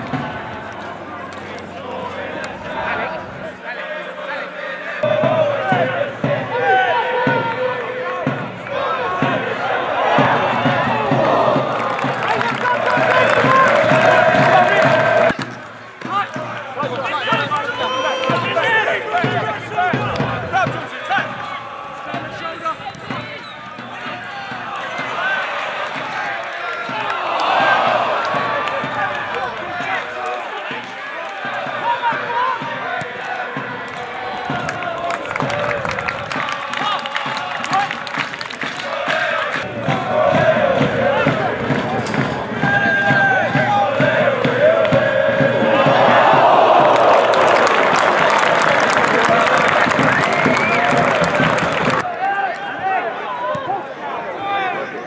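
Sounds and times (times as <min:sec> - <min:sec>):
crowd noise: 0:00.0 - 0:55.0
players and spectators shouting: 0:00.0 - 0:55.0.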